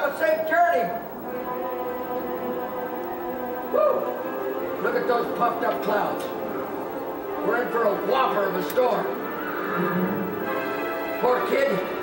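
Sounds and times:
orchestra playing sustained notes: 1.0s - 12.0s.

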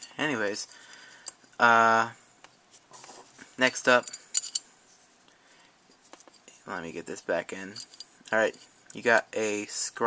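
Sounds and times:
faint handling noise: 2.4s - 9.7s.

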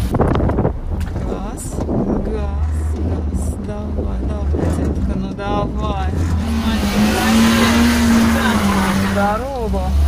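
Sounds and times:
car engine revving hard: 1.8s - 10.0s.

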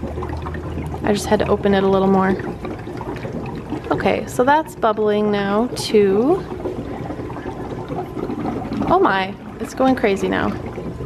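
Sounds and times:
air bubbling through water: 0.0s - 11.0s.

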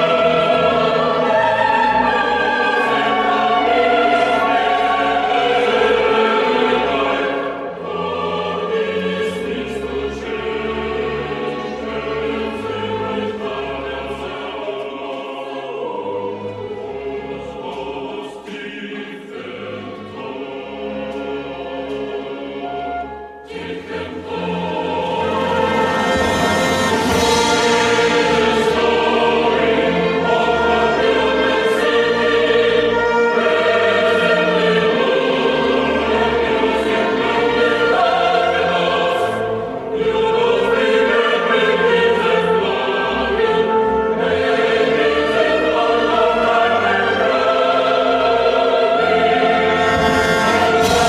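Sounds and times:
choir singing with orchestra: 0.0s - 51.0s.

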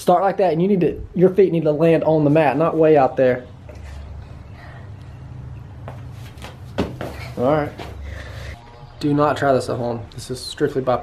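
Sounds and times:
soft thuds on rubber floor: 5.9s - 7.9s.

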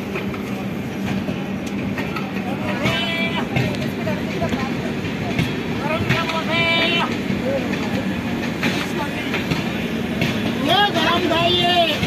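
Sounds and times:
train running at speed: 0.0s - 12.0s
wheels clattering on track: 0.0s - 12.0s.

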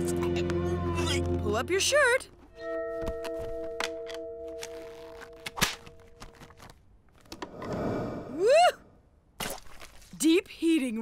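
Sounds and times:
voiced whoop: 8.4s - 8.9s.

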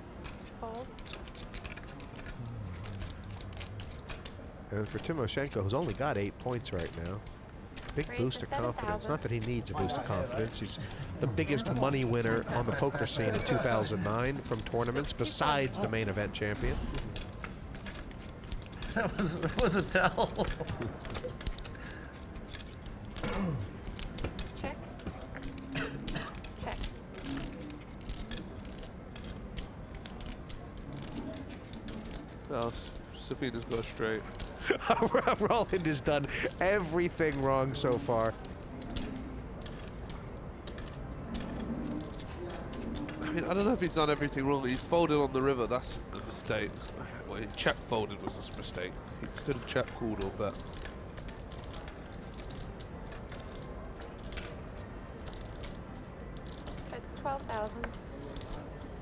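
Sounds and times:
low room hum: 0.0s - 59.0s
poker chips clicking: 0.2s - 59.0s.

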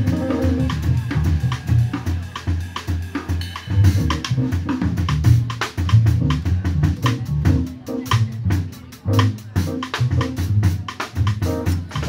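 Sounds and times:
plucked double bass: 0.0s - 2.0s, 3.7s - 12.0s
jazz drum kit played with sticks: 0.0s - 12.0s.

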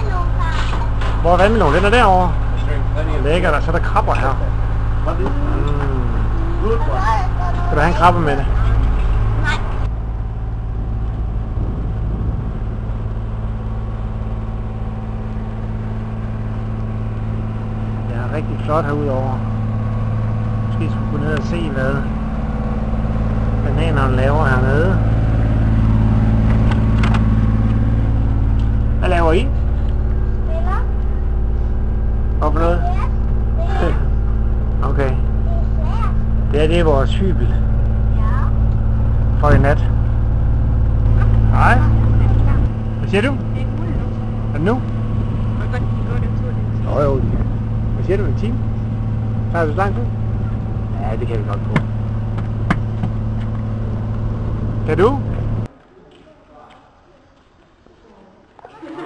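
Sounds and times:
boat engine humming: 0.0s - 55.8s.

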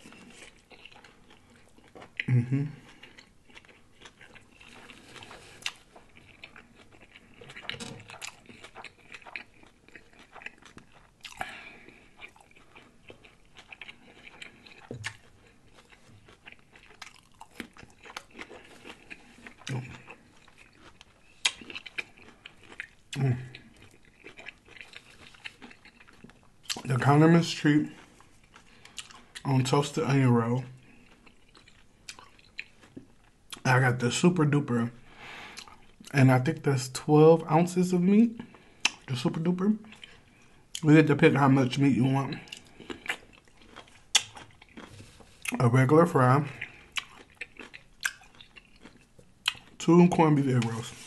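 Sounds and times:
chewing and biting food: 0.0s - 36.2s, 38.0s - 51.0s
closed-mouth hums: 2.2s - 3.0s
wet mouth clicks: 44.1s - 44.5s.

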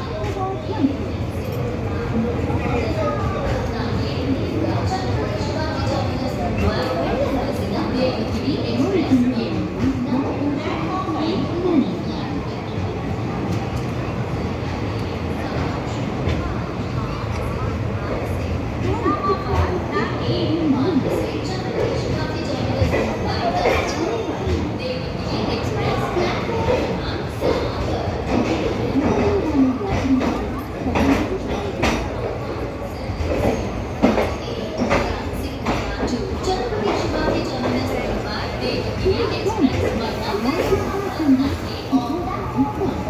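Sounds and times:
train wheels rumbling on rail: 0.0s - 43.0s.

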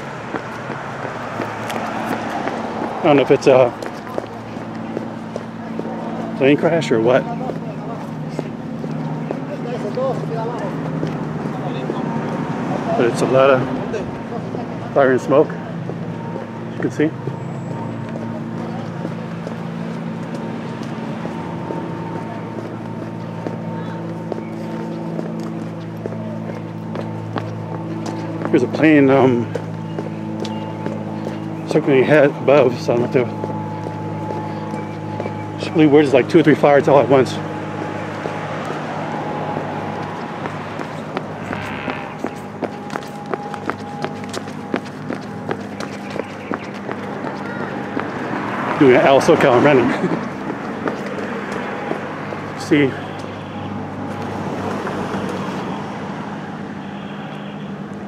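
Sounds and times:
footsteps on concrete: 0.0s - 12.7s, 15.7s - 56.1s.

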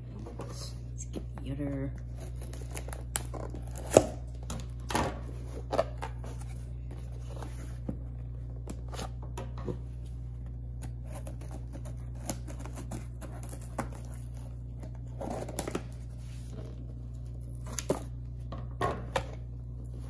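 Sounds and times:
scissors cutting tape and cardboard: 2.2s - 4.2s, 10.8s - 15.9s.

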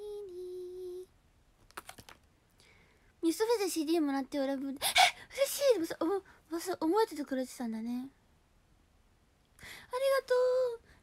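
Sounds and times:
soft hiss: 0.0s - 11.0s.

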